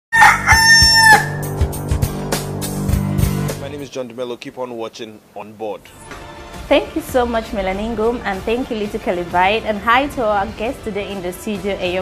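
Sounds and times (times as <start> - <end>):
jingle music with drum hits: 0.5 - 3.9.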